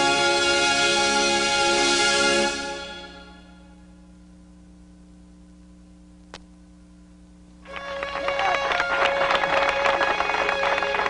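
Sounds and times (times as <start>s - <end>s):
crowd applause: 7.6s - 11.0s.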